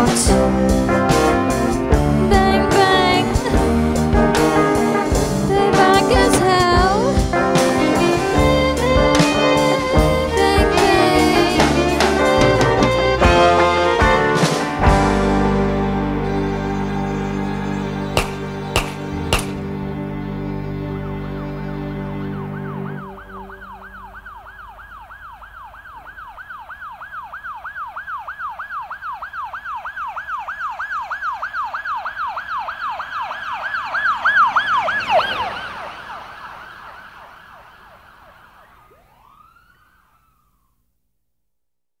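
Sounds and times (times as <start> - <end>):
music: 0.0 - 24.3
yelping siren passing: 22.2 - 40.8.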